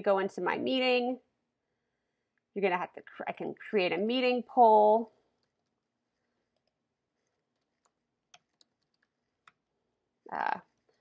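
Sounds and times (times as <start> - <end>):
computer keyboard typing: 6.5 - 9.6.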